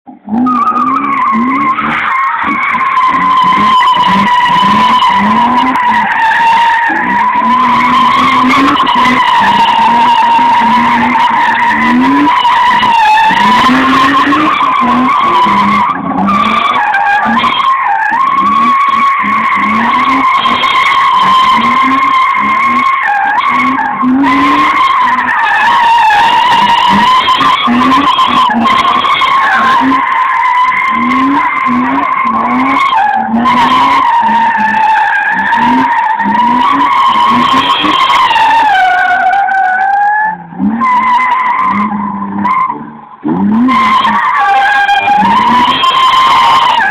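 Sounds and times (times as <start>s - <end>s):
car engine revving: 0.1s - 46.9s
tyres squealing: 0.3s - 46.9s.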